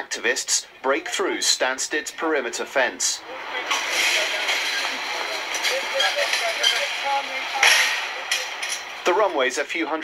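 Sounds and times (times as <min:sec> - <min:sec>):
muffled voices: 0:00.0 - 0:10.0.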